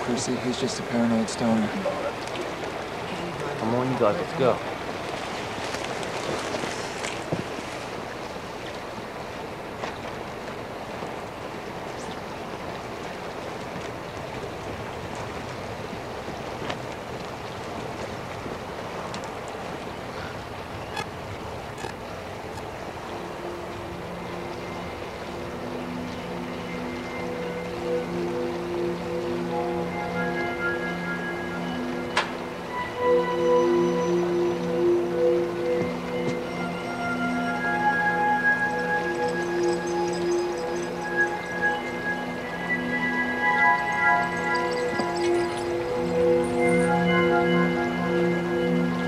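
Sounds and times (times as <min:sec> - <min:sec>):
film score held notes: 0:00.0 - 0:49.0
steady rushing hiss: 0:22.0 - 0:49.0.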